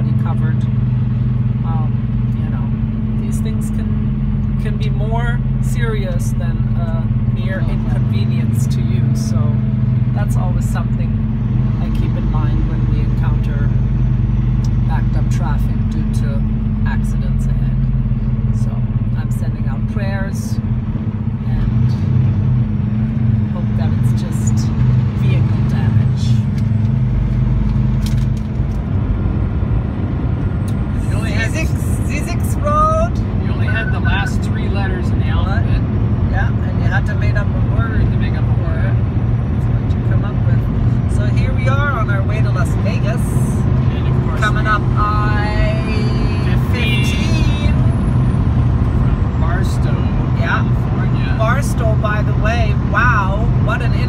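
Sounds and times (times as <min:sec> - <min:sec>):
road noise: 0:00.0 - 0:54.0
truck engine drone: 0:00.0 - 0:54.0.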